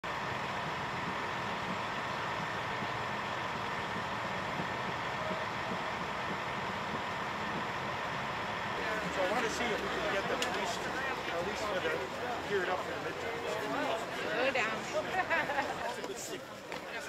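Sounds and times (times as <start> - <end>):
truck engine idling: 0.0 - 17.0.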